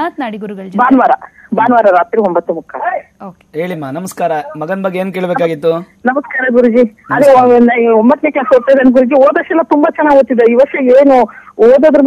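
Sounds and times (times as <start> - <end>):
woman talking: 0.0 - 1.9, 6.1 - 9.1.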